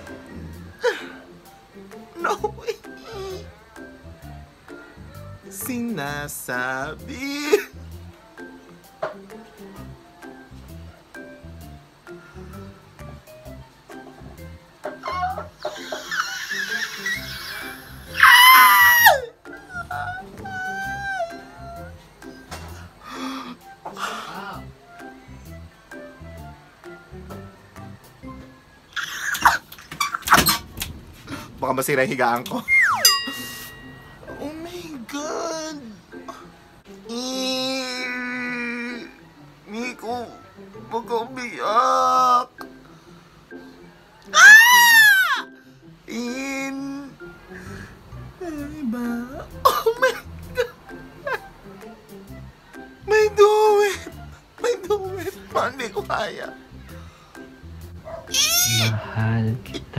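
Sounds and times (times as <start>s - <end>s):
background music with beat: 0.0s - 16.0s, 18.0s - 34.8s, 53.7s - 59.9s
person shrieking: 15.0s - 21.9s, 44.3s - 45.5s, 58.3s - 59.1s
person squealing: 15.0s - 21.9s, 44.3s - 45.5s, 58.3s - 59.3s.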